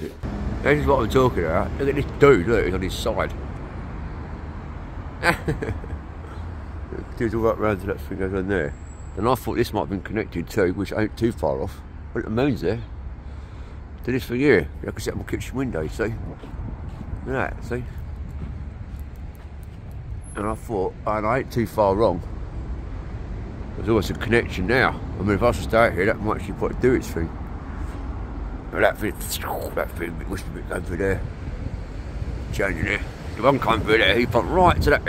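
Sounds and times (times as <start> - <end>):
road traffic rumble: 0.0 - 35.0
man's voice: 28.8 - 31.2, 32.6 - 35.0.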